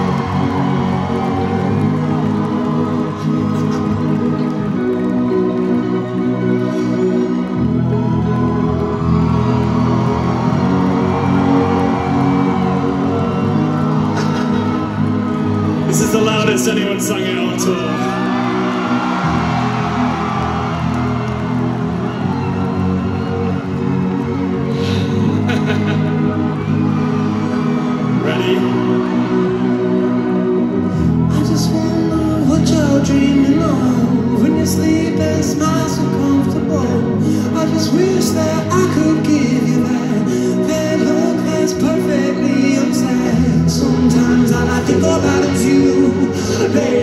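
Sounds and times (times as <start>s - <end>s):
low bass line: 0.0s - 16.8s, 18.2s - 47.0s
held keyboard chords: 0.0s - 47.0s.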